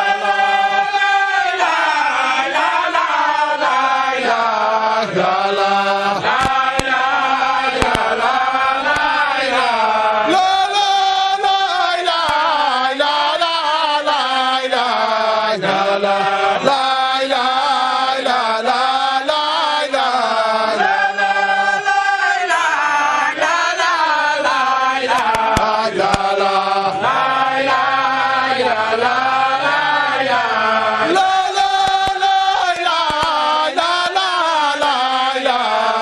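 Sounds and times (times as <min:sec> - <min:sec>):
men chanting in unison: 0:00.0 - 0:36.0.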